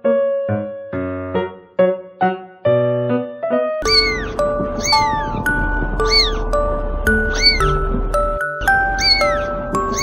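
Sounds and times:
background music with held notes: 0.0 - 10.0
kitten mewing: 3.8 - 5.4, 6.0 - 6.5, 7.2 - 7.8, 8.8 - 10.0.

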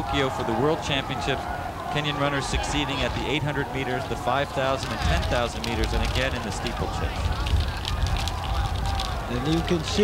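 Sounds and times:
faint spectators' voices: 0.0 - 10.0
low rumble with crackle: 2.5 - 10.0.

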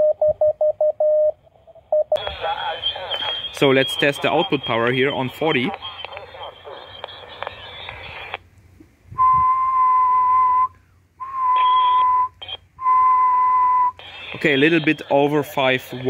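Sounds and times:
morse sidetone tone: 0.0 - 2.2, 11.5 - 14.0
radio receiver hiss: 2.2 - 8.5, 13.9 - 16.0.

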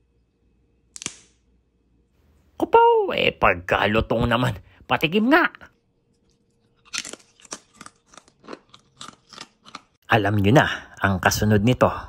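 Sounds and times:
potato chip crunching: 6.2 - 10.0.

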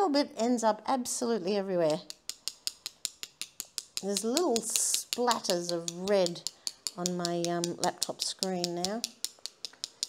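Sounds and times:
paintbrush tapping on brush handle: 1.9 - 10.0.

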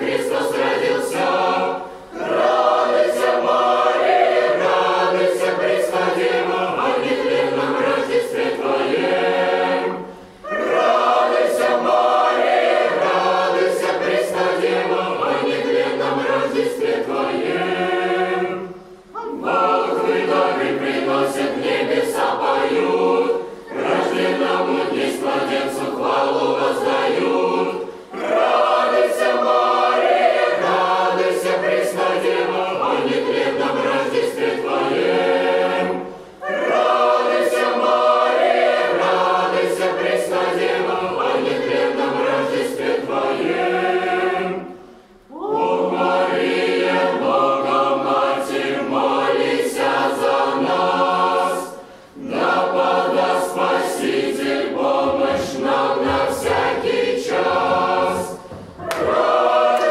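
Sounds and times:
boys' choir singing a cappella: 0.0 - 59.9.

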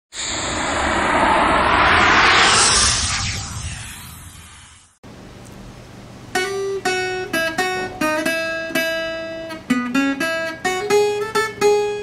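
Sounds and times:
rushing whoosh: 0.1 - 5.0.

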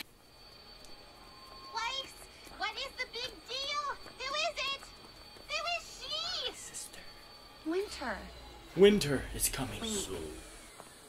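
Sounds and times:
faint steady tone: 0.0 - 11.0
high-pitched female cartoon voice: 1.8 - 4.8, 5.5 - 6.9.

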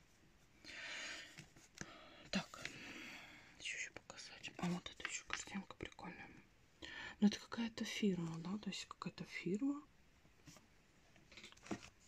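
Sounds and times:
woman whispering: 2.2 - 2.8, 3.6 - 6.5, 7.1 - 9.9.

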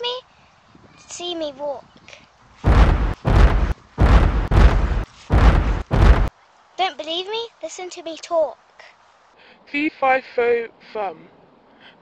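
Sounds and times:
heavy booming stomps: 2.6 - 6.3.

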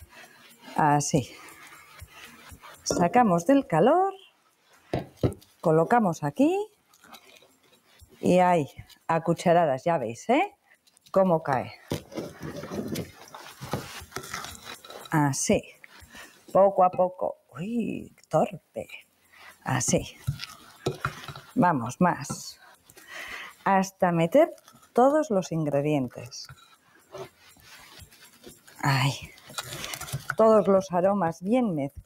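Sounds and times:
wooden spoon scraping glass bowl: 0.0 - 4.1, 5.2 - 9.6, 11.2 - 17.2, 19.5 - 31.1.

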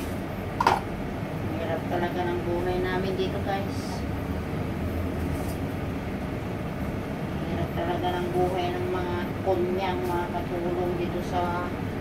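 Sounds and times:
gas burner rumble: 0.0 - 12.0.

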